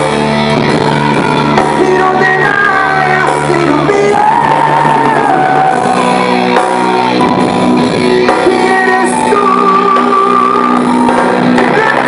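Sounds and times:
live cumbia band playing: 0:00.0 - 0:12.0
singer holding long note: 0:00.0 - 0:12.0.

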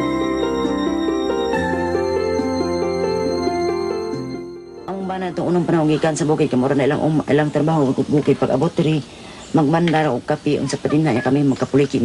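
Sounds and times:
woman talking: 0:04.9 - 0:12.0.

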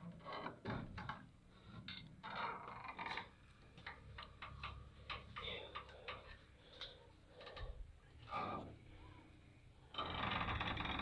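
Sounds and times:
faint clicks and ticks: 0:03.0 - 0:07.8.

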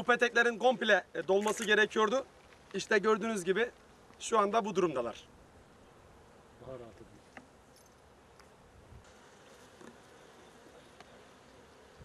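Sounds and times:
honeybees buzzing: 0:05.3 - 0:06.6, 0:07.2 - 0:12.0.

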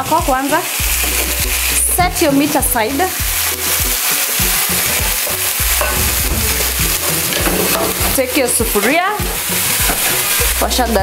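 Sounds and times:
low music: 0:00.0 - 0:11.0
oil sizzling in a frying pan: 0:00.0 - 0:11.0.

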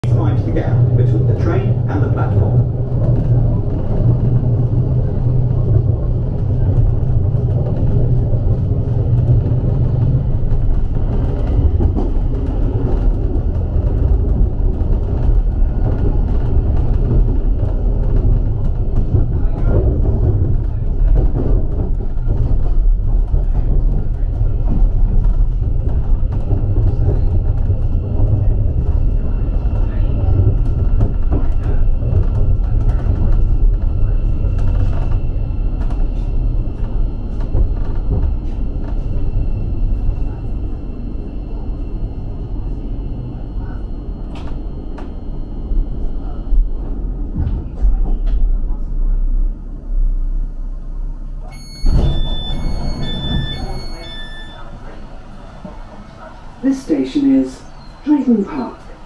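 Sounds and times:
train interior rumble: 0:00.0 - 0:59.0
faint steady tones: 0:51.4 - 0:59.0.

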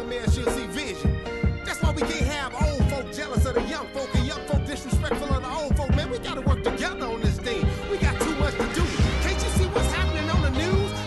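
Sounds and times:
rapping over a beat: 0:00.0 - 0:11.0.

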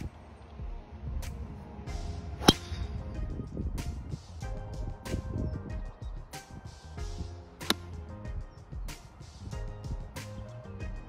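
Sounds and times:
background music with steady beat: 0:00.0 - 0:11.0
golf driver striking ball: 0:02.4 - 0:02.9.

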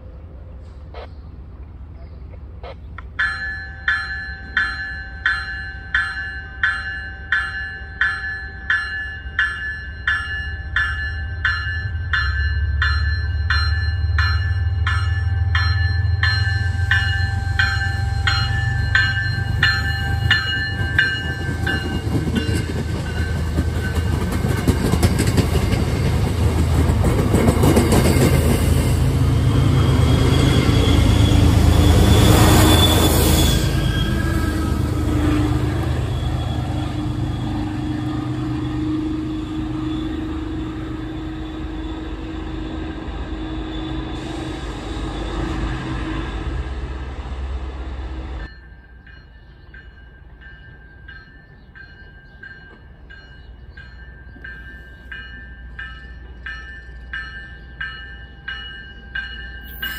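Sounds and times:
train rumble: 0:00.0 - 0:59.9
warning bell ringing: 0:03.2 - 0:24.3, 0:48.4 - 0:59.9.

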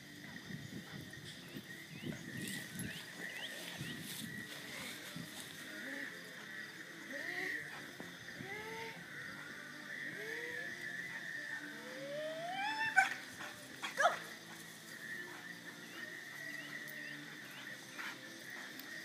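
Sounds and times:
dog barking: 0:13.8 - 0:14.2.

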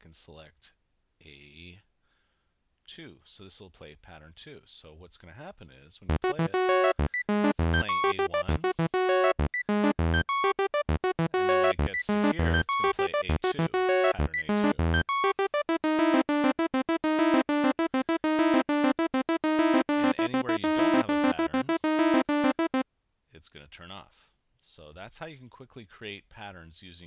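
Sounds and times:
synthesizer staccato notes: 0:06.1 - 0:22.8.

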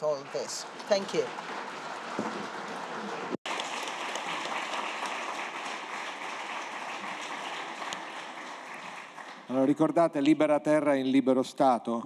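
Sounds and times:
audience applauding: 0:00.0 - 0:10.2.

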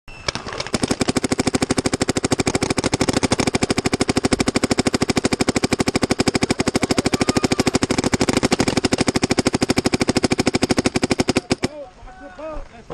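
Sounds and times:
paintball marker rapid firing: 0:00.3 - 0:11.8.

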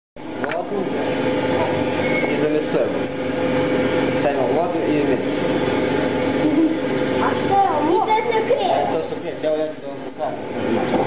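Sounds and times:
steady machine hum: 0:00.2 - 0:11.0
voices talking indistinctly: 0:06.8 - 0:11.0.

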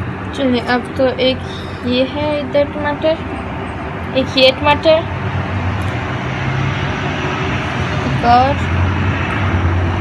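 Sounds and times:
engine hum and rumble: 0:00.0 - 0:10.0.

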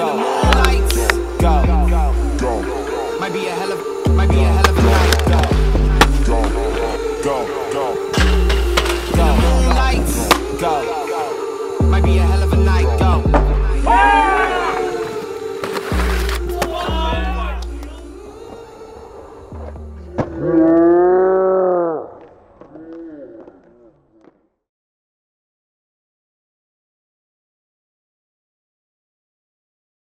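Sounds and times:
hip hop music with deep bass: 0:00.0 - 0:20.5
skates grinding a metal handrail: 0:08.1 - 0:10.5, 0:14.9 - 0:16.9
man shouting: 0:13.8 - 0:15.0, 0:16.6 - 0:17.6
short hollering shouts: 0:13.9 - 0:15.0.

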